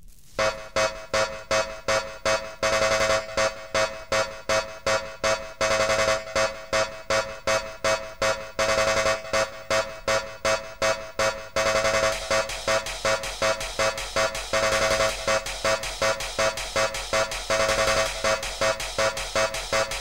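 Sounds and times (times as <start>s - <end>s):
pulsing synthesizer riff: 0.4s - 20.0s.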